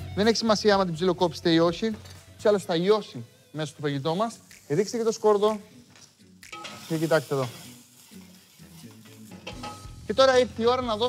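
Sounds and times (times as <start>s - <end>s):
vegetables sizzling in oil: 6.5s - 10.2s.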